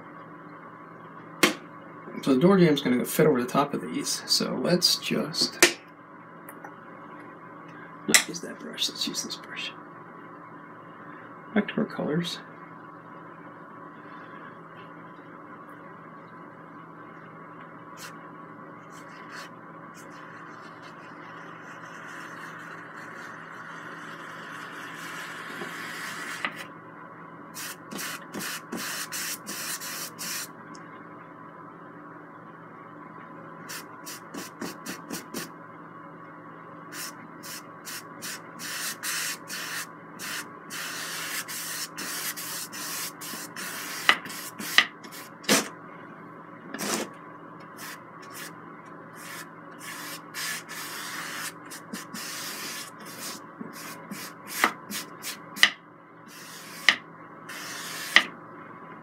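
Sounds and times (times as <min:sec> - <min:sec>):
faint steady hum: 0:00.0 - 0:59.0
paintbrush rubbing on canvas: 0:18.9 - 0:25.3, 0:49.2 - 0:55.4, 0:56.3 - 0:56.9, 0:57.5 - 0:58.2.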